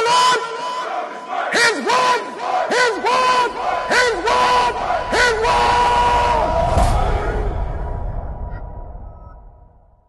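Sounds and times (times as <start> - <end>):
men shouting in unison: 0.0 - 7.6.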